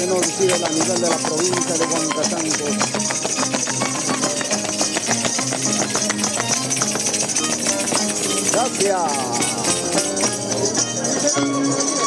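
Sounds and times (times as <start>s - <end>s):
plucked string dance music: 0.0s - 12.0s.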